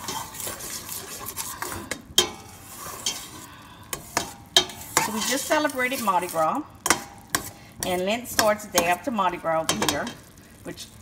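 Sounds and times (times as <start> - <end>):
spoon stirring and scraping pot: 0.0 - 10.4
vegetables sizzling in butter: 0.0 - 11.0.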